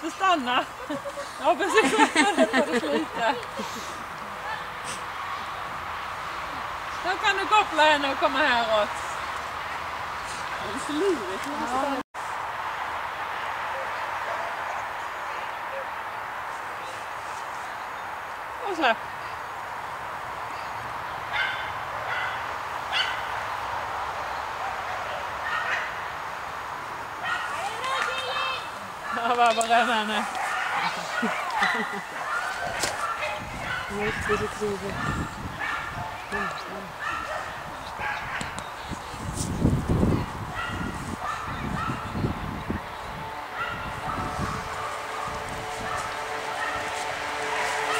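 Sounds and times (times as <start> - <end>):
dog barking high-pitched: 21.3 - 23.3, 30.2 - 38.5, 40.6 - 42.1, 43.6 - 44.3, 45.8 - 46.9.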